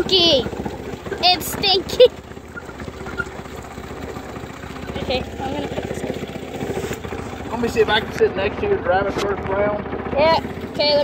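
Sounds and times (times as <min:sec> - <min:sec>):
go-kart engine idling: 0:00.0 - 0:11.0.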